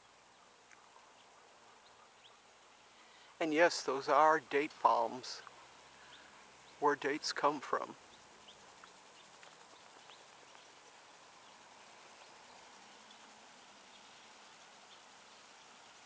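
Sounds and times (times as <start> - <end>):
faint high ticks: 0.6 - 1.0, 8.4 - 15.1.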